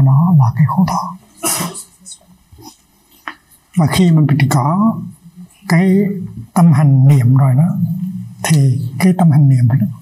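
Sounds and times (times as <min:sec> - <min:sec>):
man coughing: 0:01.4 - 0:02.0.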